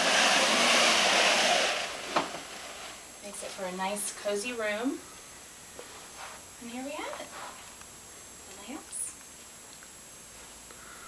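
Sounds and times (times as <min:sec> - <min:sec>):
window shade pulled down swishing: 0:00.0 - 0:03.0.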